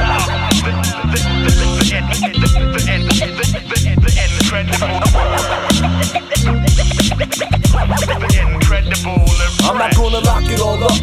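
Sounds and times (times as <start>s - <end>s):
deep bass line: 0.0s - 11.0s
hip hop beat: 0.0s - 11.0s
steady hi-hat: 0.0s - 11.0s
turntable scratching: 0.0s - 11.0s.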